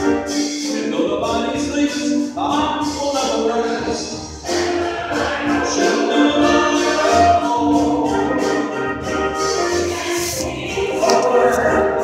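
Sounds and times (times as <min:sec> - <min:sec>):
choir singing held notes: 0:03.1 - 0:12.0.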